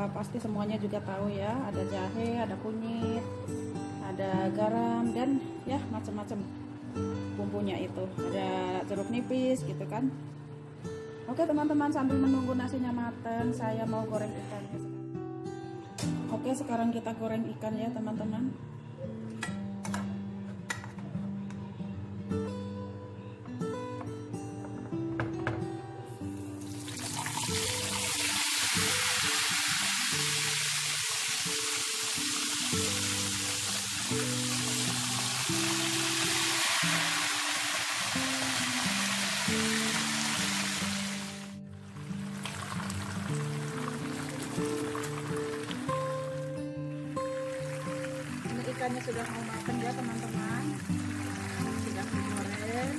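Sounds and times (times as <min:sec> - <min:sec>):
background music: 0:00.0 - 0:52.9
fish sizzling in hot oil: 0:26.7 - 0:41.5, 0:42.2 - 0:46.1.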